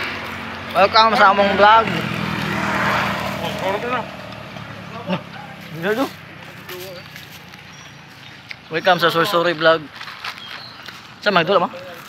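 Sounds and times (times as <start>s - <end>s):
motorcycle engine passing by: 0.0s - 9.2s.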